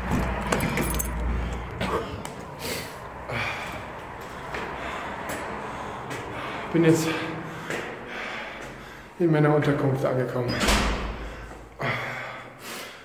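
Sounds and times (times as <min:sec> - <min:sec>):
low rumble of street traffic: 0:00.0 - 0:13.0.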